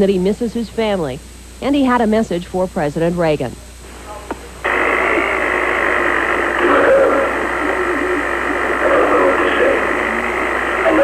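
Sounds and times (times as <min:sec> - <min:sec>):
thick tape hiss: 0:00.0 - 0:11.0
man speaking on tape: 0:06.3 - 0:11.0.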